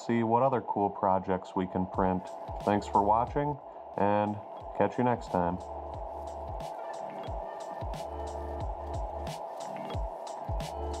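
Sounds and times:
electronic music with drum beat: 1.8 - 11.0.

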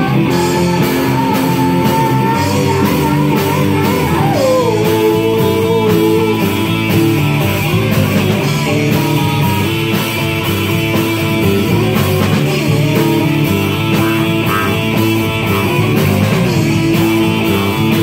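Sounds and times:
electric guitars rock music: 0.0 - 18.0.

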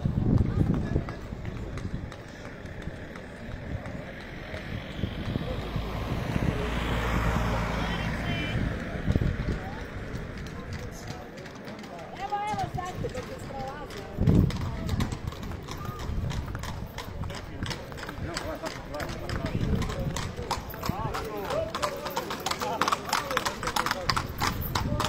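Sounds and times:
hooves clip-clopping on pavement: 0.0 - 25.0.

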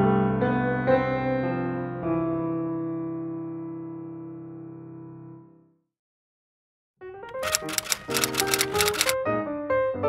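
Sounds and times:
typewriter key clacks: 7.3 - 9.2.

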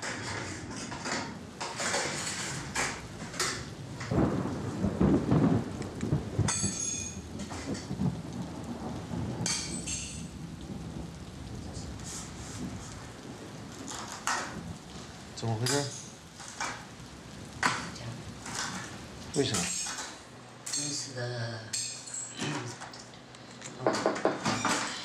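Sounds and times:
low rumble of thunder: 0.0 - 19.4
rain falling: 0.0 - 25.0.

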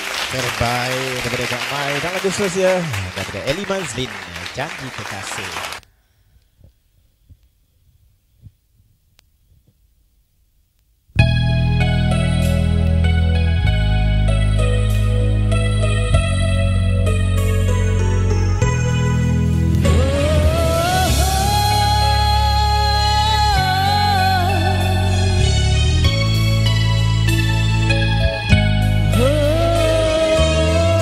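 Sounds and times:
karaoke backing track: 11.2 - 31.0.

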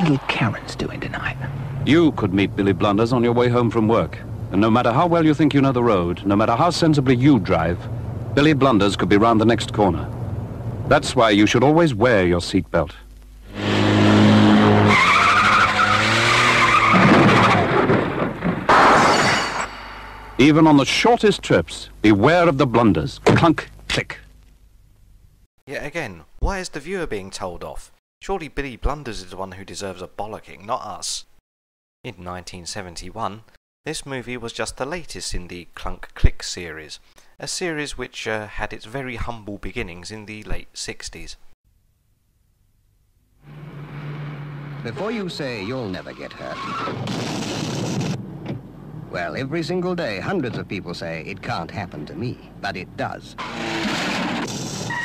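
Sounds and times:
car engine droning: 0.2 - 11.2, 13.5 - 18.6, 43.4 - 46.9
tyres screeching: 13.5 - 18.0, 44.9 - 47.2, 53.4 - 55.0
car crash: 13.5 - 20.5, 46.1 - 48.6, 53.4 - 55.0
windscreen glass smashing: 16.7 - 20.4
car engine running hard: 43.4 - 45.3.

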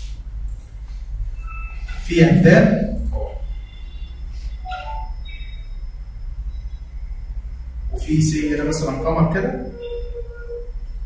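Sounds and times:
room noise hum: 0.0 - 11.0.

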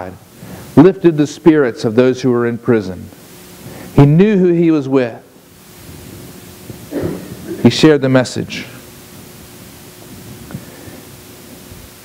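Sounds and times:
faint hum: 0.0 - 12.0
low hiss: 0.0 - 12.0.

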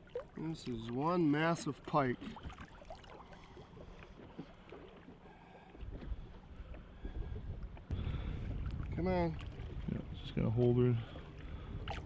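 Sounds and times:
wind on microphone: 5.9 - 12.0.

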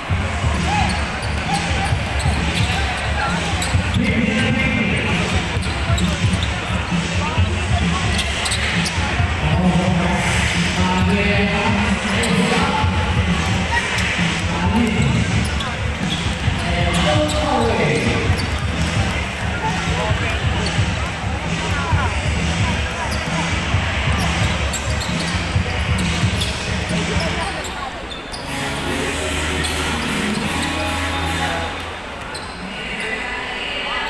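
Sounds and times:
crowd voices and shouts: 0.0 - 34.0.

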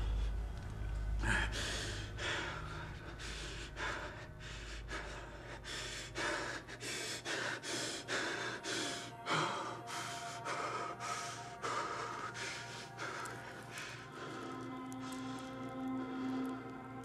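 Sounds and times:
low rumble: 0.0 - 6.7
man breathing hard: 0.0 - 17.0.

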